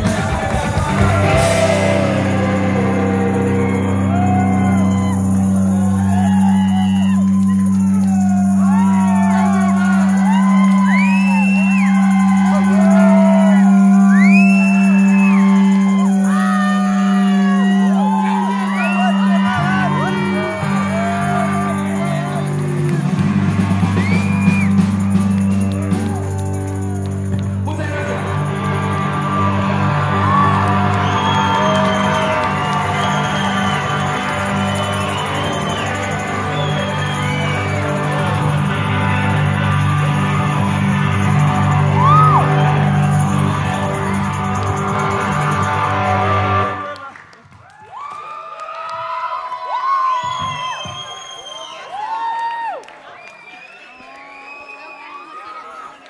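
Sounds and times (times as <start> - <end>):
whooping shouts: 0.0 - 23.2, 23.8 - 44.7, 45.5 - 52.9
rock band droning low chord: 0.0 - 46.9.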